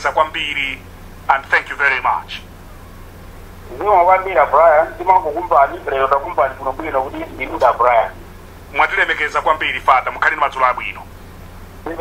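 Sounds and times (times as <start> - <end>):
radio broadcast speech: 3.7 - 11.1.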